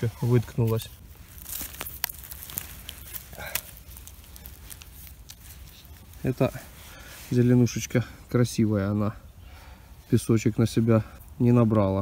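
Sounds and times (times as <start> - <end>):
twigs crackling and snapping: 0.0 - 7.9
forest floor rustling: 0.0 - 9.0.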